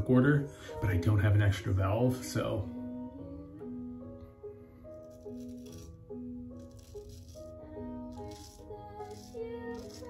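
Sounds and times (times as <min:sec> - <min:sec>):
soft background music: 0:00.0 - 0:10.0
razor scraping stubble: 0:04.9 - 0:10.0.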